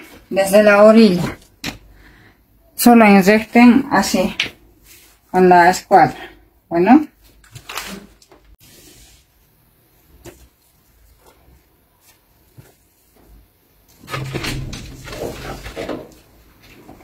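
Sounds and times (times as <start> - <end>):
rough scraping and rustling: 14.0 - 16.4.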